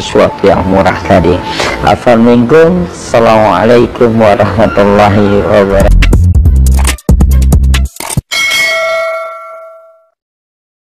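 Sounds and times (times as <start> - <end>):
bell chime: 8.3 - 10.2.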